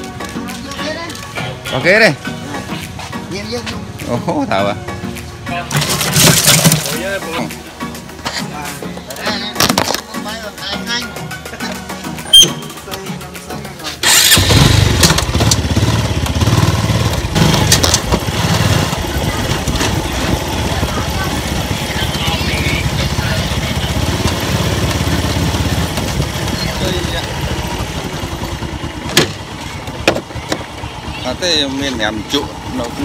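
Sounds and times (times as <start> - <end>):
vehicle engine droning: 14.0 - 33.0.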